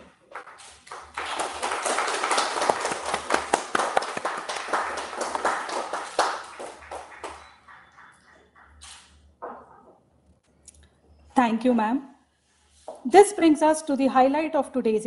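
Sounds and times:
people clapping: 0.0 - 9.8.

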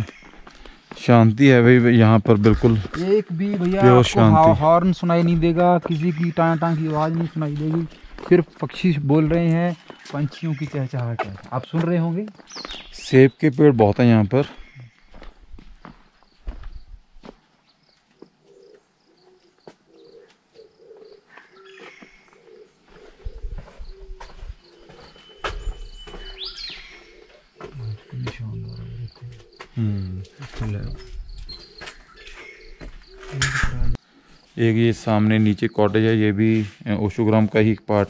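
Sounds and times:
birds chirping and calling: 0.0 - 17.0, 17.7 - 36.8
quiet voices talking: 1.0 - 12.3, 27.6 - 31.2.

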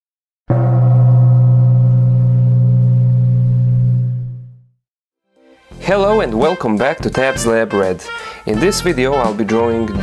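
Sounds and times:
low sustained tone: 0.5 - 4.6.

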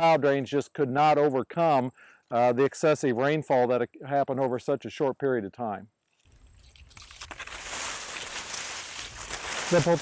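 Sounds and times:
wind rustling through corn: 6.2 - 10.0.

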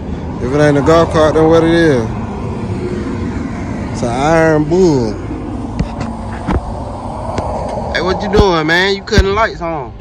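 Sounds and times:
road traffic going by: 0.0 - 10.0.

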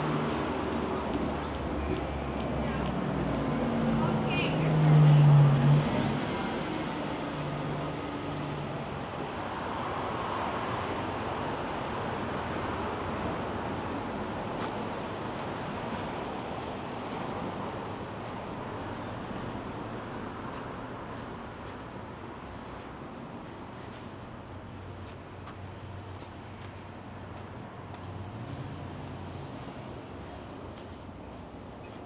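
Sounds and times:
bus passing: 0.0 - 32.0
street traffic noise: 0.0 - 32.0.

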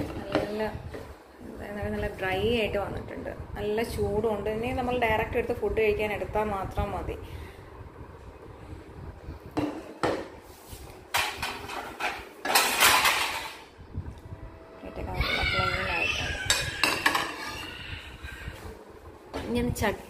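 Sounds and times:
plates and pots clinking: 11.1 - 13.7, 16.4 - 17.7
dishwasher rack rattle: 11.2 - 13.7.

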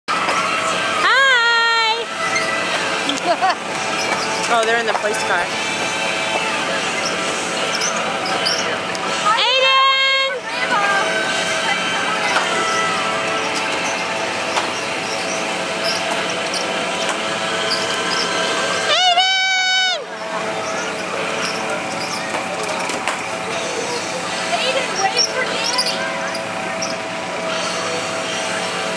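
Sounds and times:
fairground din: 0.1 - 28.9
voices: 0.2 - 28.9
loud pitched call: 17.6 - 22.3.

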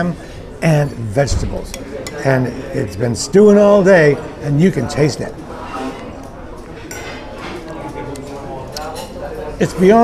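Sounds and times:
diners talking: 0.7 - 10.0.

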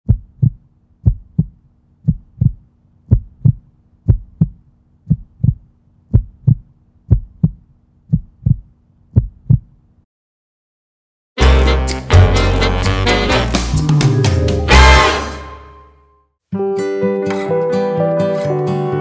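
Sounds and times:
heartbeat thumps: 0.1 - 9.8
faint steady hum: 0.1 - 10.0.

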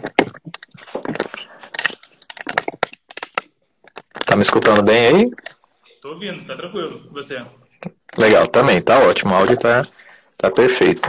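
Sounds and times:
sharp clicks and crackles: 0.0 - 5.8.

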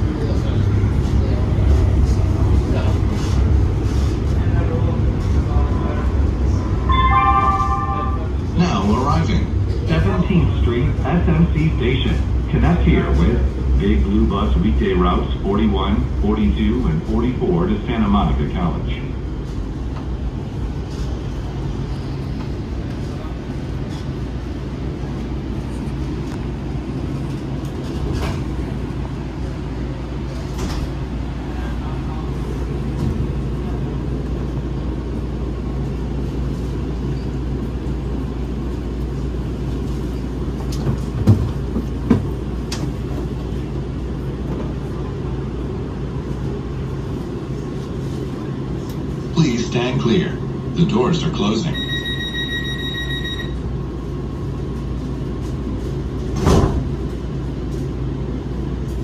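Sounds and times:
light-rail car equipment humming: 0.0 - 59.0.

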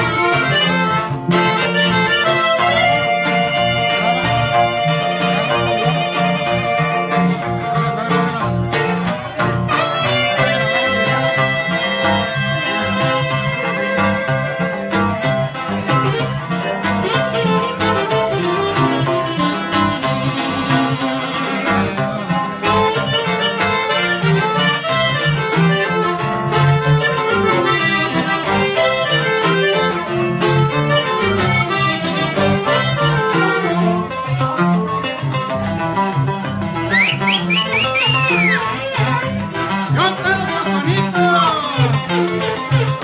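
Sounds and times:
button accordion: 0.0 - 43.0
electric bass: 0.0 - 43.0
saxophone: 0.0 - 43.0.

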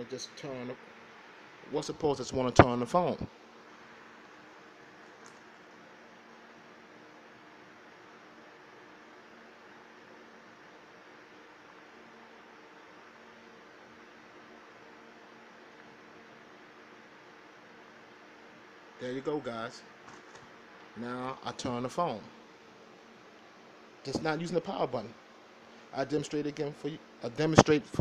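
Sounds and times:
faint steady hiss: 0.0 - 28.0.

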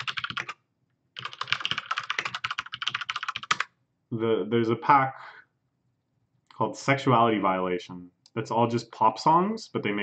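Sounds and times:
fast typing on keyboard: 0.0 - 0.6, 1.2 - 3.7.

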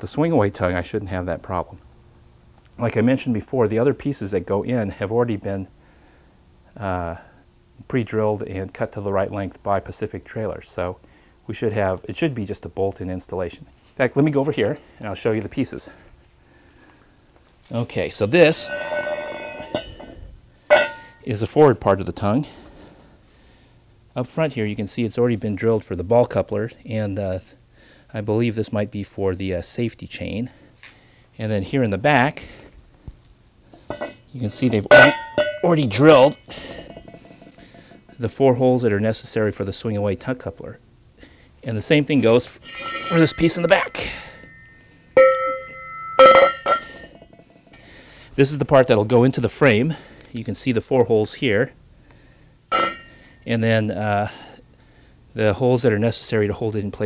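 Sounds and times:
steel tube clanking and ringing: 18.4 - 21.4, 33.9 - 38.2, 42.4 - 47.8, 52.7 - 53.5.

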